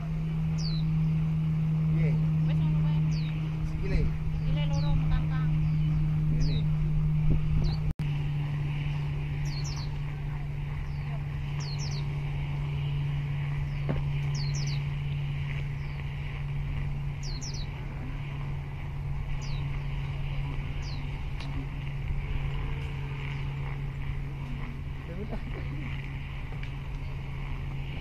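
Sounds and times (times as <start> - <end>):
birds chirping: 0.0 - 28.0
steady low drone: 0.0 - 28.0.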